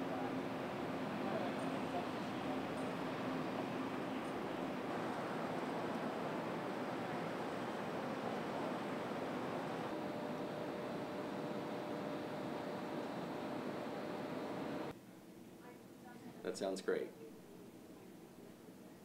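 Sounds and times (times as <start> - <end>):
steady rushing hiss: 0.0 - 14.9
faint steady hum: 0.0 - 19.0.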